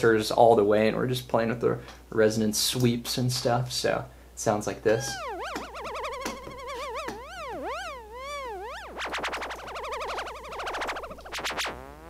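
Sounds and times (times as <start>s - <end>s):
synthesizer resonance sweeping: 5.0s - 12.0s.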